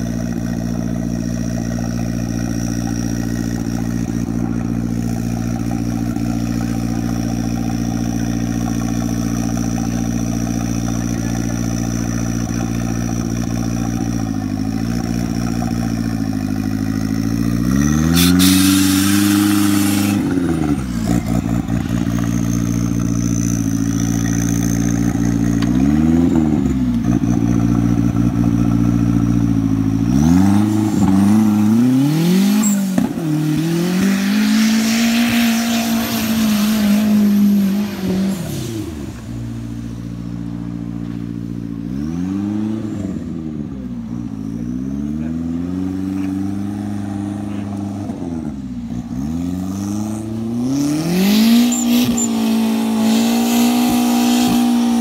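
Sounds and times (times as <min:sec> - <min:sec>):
buggy engine idling and revving: 0:00.0 - 0:55.0
loud hiss: 0:18.1 - 0:20.3.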